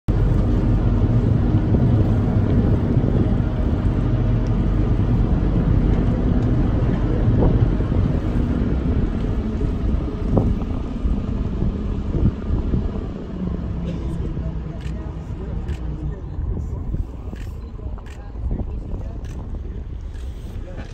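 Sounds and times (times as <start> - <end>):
boat engine rumbling: 0.1 - 20.9
wind buffeting microphone: 0.1 - 20.9.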